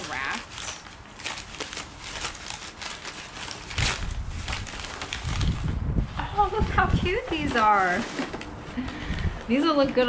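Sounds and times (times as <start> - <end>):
paper and bubble wrap crinkling: 0.0 - 9.6.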